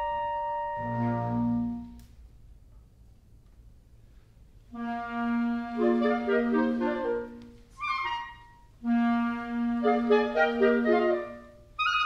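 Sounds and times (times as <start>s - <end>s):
clarinet ensemble playing: 0.0s - 2.0s, 4.7s - 12.0s.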